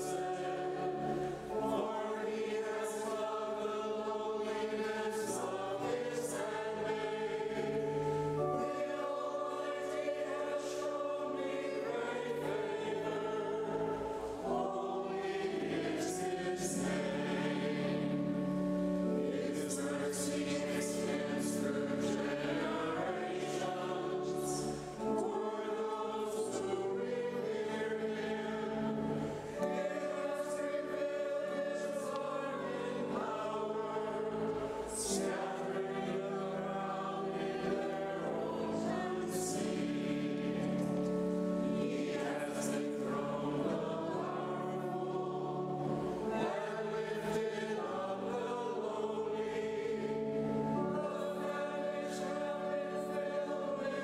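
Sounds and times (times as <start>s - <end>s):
choir singing a hymn: 0.0s - 54.0s.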